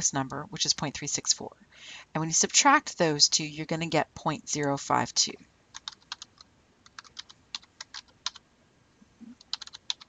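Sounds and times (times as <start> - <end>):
keyboard typing clicks: 5.8 - 8.4, 9.4 - 10.0.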